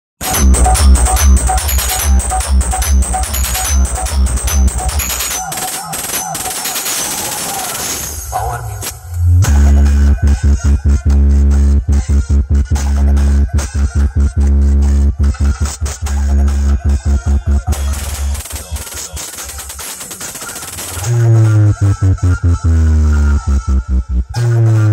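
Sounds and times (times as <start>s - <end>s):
rapid rattling effect: 0.2s - 8.3s, 17.7s - 21.2s
electronic dance music: 0.2s - 24.9s.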